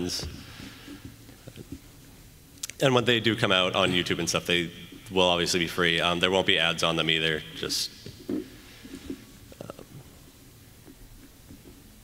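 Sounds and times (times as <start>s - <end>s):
man saying um: 2.8s - 7.9s.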